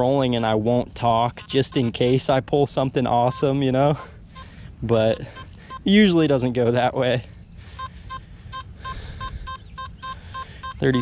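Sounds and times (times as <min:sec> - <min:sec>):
metal detector beeping: 0:01.2 - 0:02.4, 0:03.0 - 0:06.3, 0:07.7 - 0:11.0.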